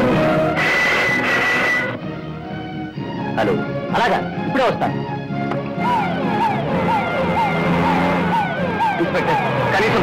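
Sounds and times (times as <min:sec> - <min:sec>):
whooping siren: 0:05.8 - 0:10.0.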